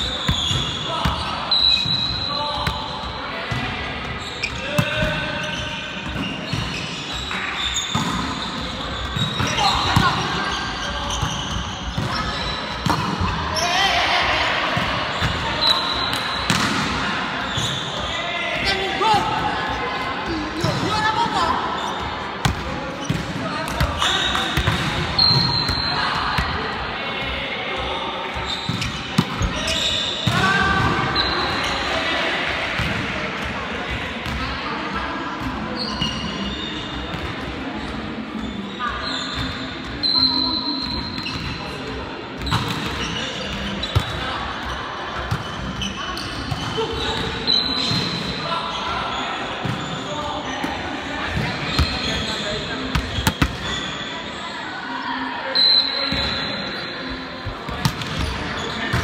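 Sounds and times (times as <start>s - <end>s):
volleyball hits: 16.0s - 17.0s.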